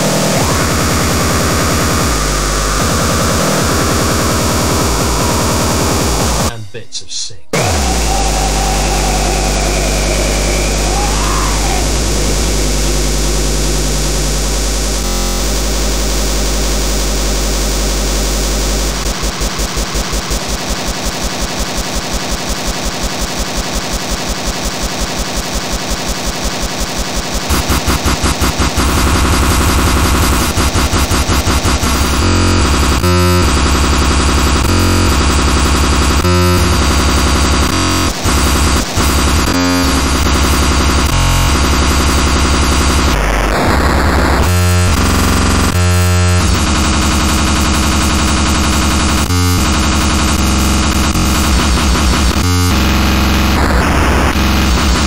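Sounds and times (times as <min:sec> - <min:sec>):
harsh buzz: 0:00.0 - 0:06.8, 0:07.5 - 0:55.0.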